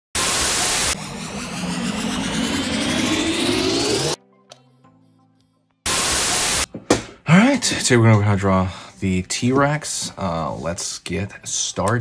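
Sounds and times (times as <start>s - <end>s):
synthetic riser sweep: 0.1s - 4.2s, 5.9s - 6.7s
static hiss burst: 0.2s - 2.4s, 5.9s - 6.7s.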